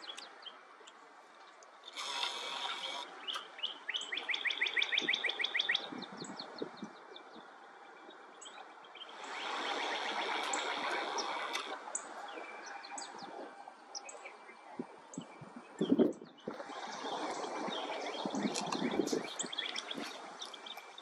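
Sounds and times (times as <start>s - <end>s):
birds chirping: 0.0s - 21.0s
steady hiss: 1.8s - 3.5s
bird trill: 2.8s - 6.5s.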